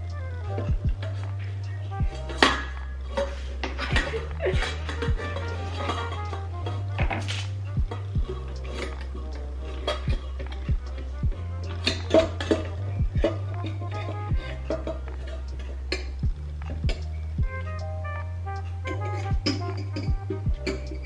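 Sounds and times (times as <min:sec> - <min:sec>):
background music with steady beat: 0:00.0 - 0:21.0
spatula scraping metal bowl: 0:00.0 - 0:21.0.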